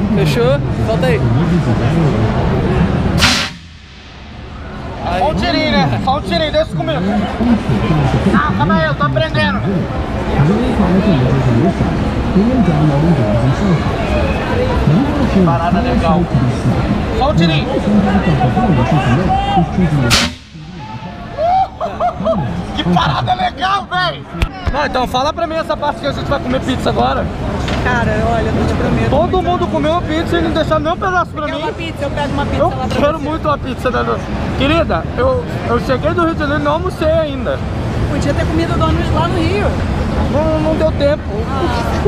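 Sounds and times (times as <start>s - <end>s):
crowd chatter: 0.0s - 42.0s
compressed air blast: 3.2s - 5.0s, 20.1s - 20.7s.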